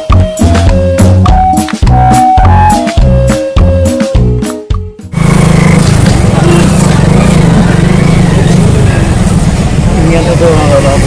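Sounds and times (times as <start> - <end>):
vehicle engines rumbling: 5.1 - 11.0
voices: 5.2 - 11.0.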